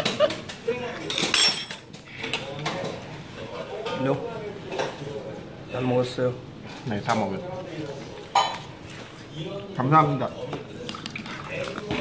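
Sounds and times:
utensils clinking against metal bowl: 0.0 - 3.1.

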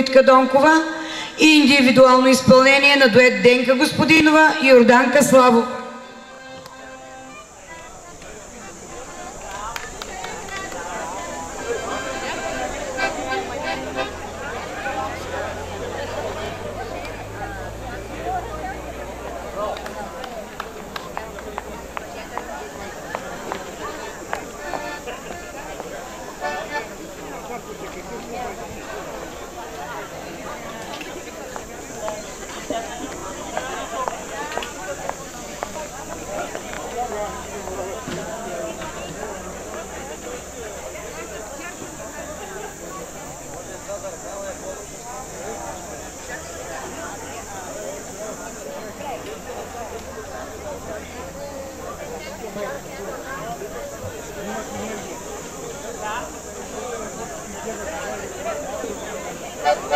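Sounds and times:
people talking indistinctly: 0.0 - 59.9.

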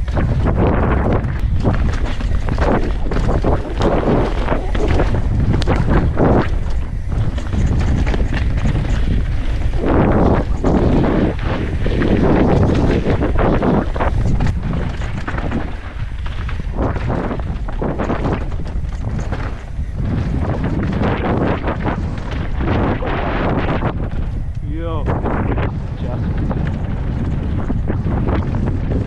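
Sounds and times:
bike knocks and rattles: 0.0 - 29.0
bike tyre noise: 0.0 - 29.0
wind buffeting microphone: 0.0 - 29.0.

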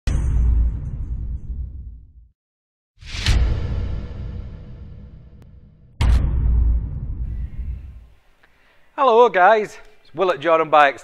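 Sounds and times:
deep hit: 0.1 - 2.2, 3.0 - 8.1
low rumble: 3.1 - 8.1.

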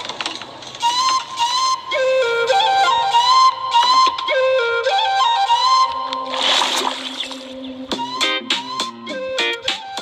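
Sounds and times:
flute melody: 0.7 - 10.0.

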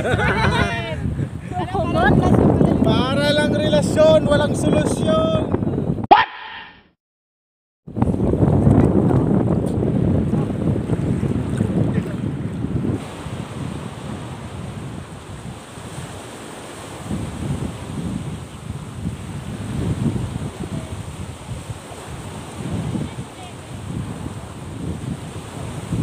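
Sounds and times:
wind rumble on microphone: 0.0 - 6.1, 7.9 - 26.0
waves washing onto pebble shore: 13.0 - 26.0.

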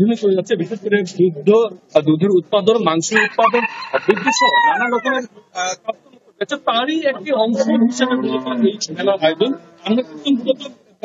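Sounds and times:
rooster crowing: 3.1 - 5.2.

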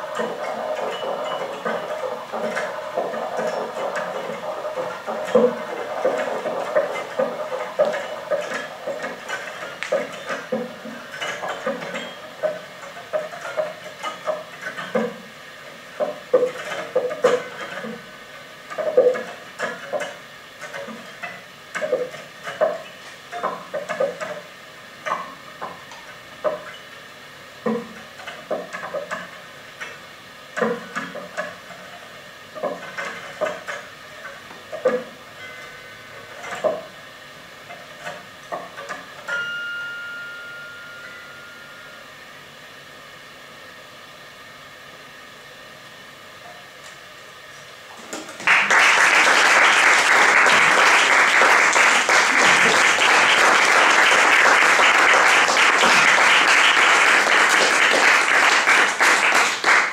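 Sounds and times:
audience applause: 48.4 - 59.9.

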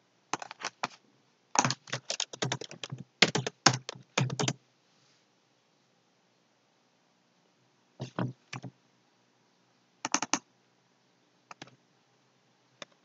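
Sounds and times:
computer keyboard typing: 0.4 - 0.9, 1.6 - 4.6, 10.1 - 10.4, 11.5 - 11.7.

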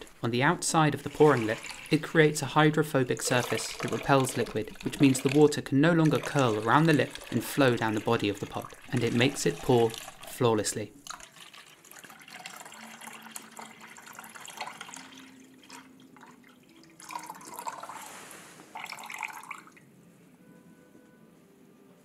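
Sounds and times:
water dripping: 0.0 - 17.9
water splashing: 0.0 - 19.8
water pouring into jug: 0.0 - 19.9.

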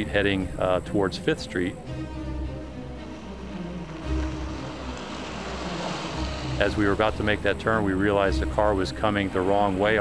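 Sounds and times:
soft background music: 0.0 - 10.0
car driving past: 1.8 - 9.9.

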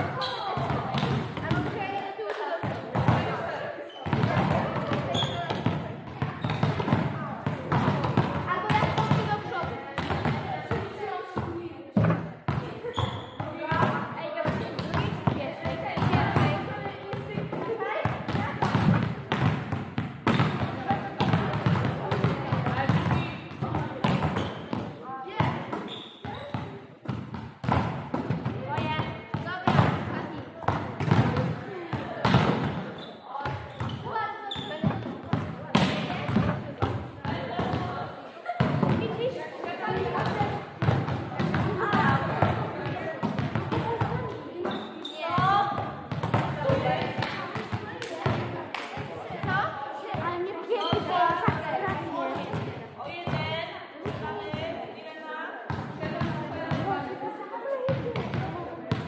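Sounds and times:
volleyballs struck and bouncing: 0.0 - 54.8, 55.7 - 57.1
players' indistinct voices: 0.0 - 59.0.

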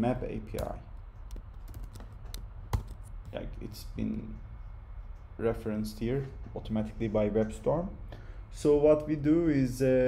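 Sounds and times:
computer keyboard keystrokes: 0.5 - 3.4.

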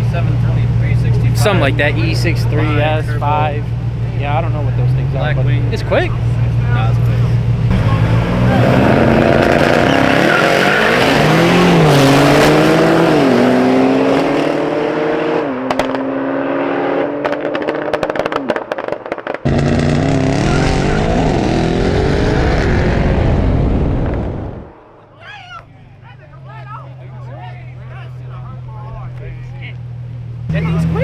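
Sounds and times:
voices: 0.0 - 11.8, 24.6 - 31.0
engine crackling: 0.0 - 14.8, 16.9 - 31.0
car engines revving hard: 0.0 - 31.0.

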